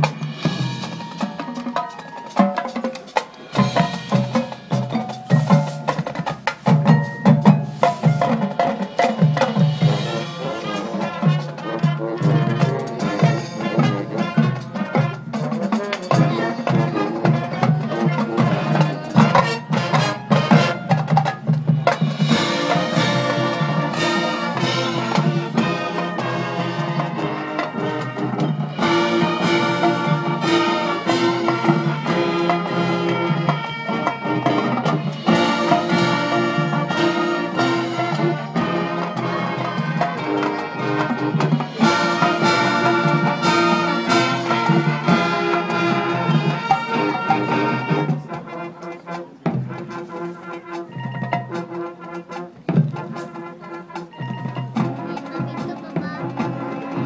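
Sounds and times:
brass chords: 0.0 - 57.0
marching band drumline: 0.0 - 57.0.

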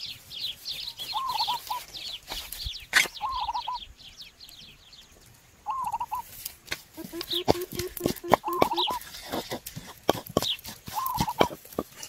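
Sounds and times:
birds twittering and calling: 0.0 - 12.0.

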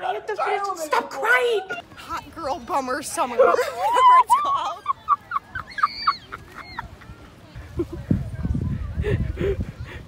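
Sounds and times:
wind buffeting microphone: 5.4 - 10.0.

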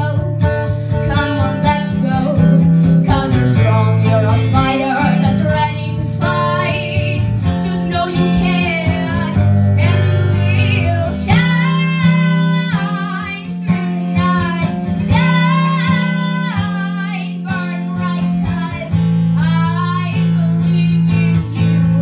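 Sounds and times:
acoustic guitar: 0.0 - 22.0
girl singing pop melody: 0.0 - 22.0.

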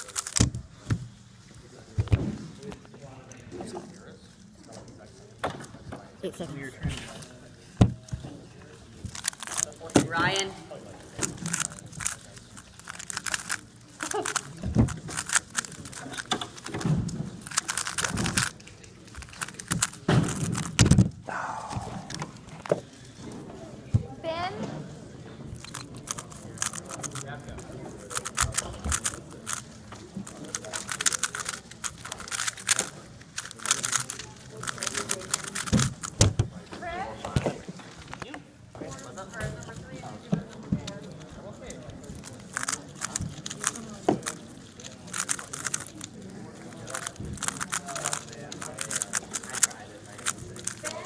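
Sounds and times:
plastic puzzle cube clicking: 0.0 - 0.9, 9.1 - 10.0, 11.2 - 21.2, 25.6 - 36.4, 42.1 - 51.0
voices talking in background: 0.0 - 51.0.

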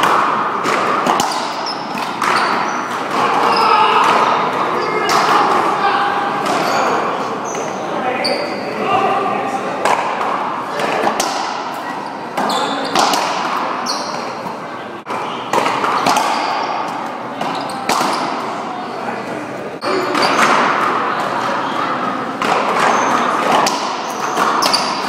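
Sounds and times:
racquetball hits echoing: 0.0 - 7.8, 9.8 - 18.7, 19.8 - 25.0
sneakers squeaking on court floor: 0.7 - 5.6, 6.2 - 8.8, 11.3 - 19.1, 19.8 - 25.0.

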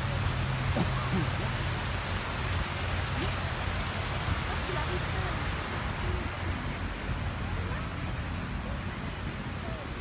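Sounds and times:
fountain water rushing: 0.0 - 10.0.

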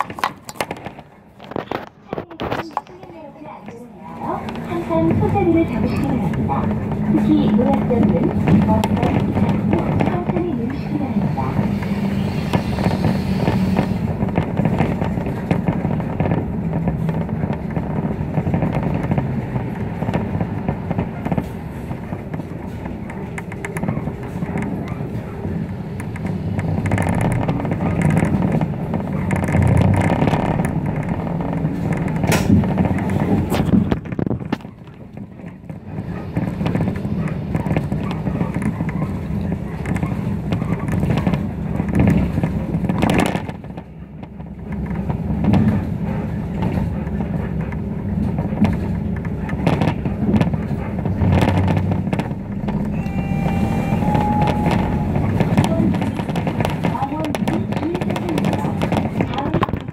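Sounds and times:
bus engine and road noise: 0.0 - 59.9
rattles: 0.0 - 59.9
short electronic tone: 52.9 - 55.3.

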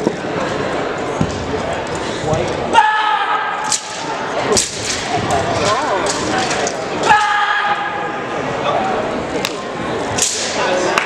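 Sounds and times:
sharp crack: 3.6 - 6.8, 10.2 - 11.0.

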